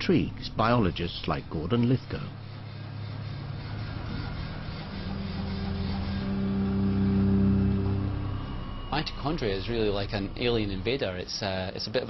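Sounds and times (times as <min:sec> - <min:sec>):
low steady drone hum: 0:00.0 - 0:12.0.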